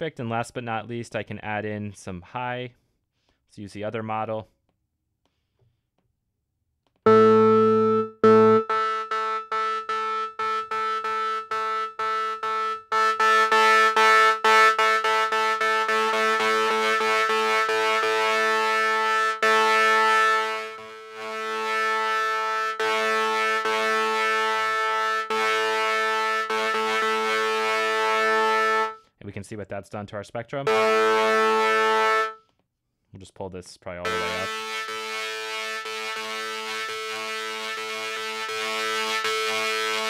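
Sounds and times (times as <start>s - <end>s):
distorted low synthesizer note: 7.1s - 29.0s, 30.7s - 32.4s, 34.1s - 40.0s.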